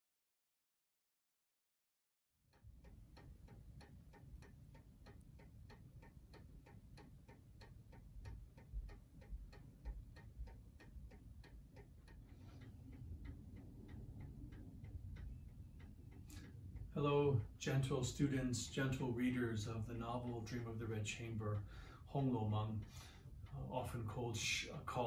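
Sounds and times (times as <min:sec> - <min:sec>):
clock ticking: 0:02.5 - 0:25.0
low room rumble: 0:02.8 - 0:25.0.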